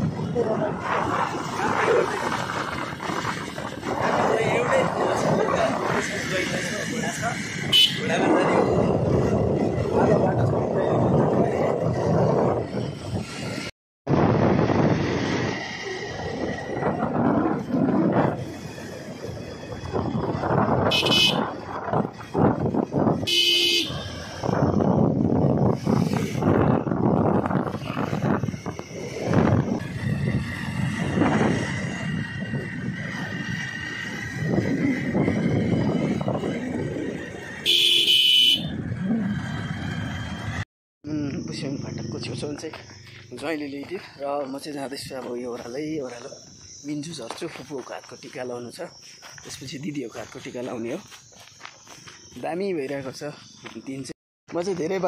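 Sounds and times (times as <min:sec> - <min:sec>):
motorcycle road noise: 0:00.0 - 0:55.0
wind noise: 0:00.0 - 0:55.0
vehicle horn honking: 0:07.7 - 0:08.1, 0:20.8 - 0:21.5, 0:23.2 - 0:24.1, 0:37.6 - 0:38.8.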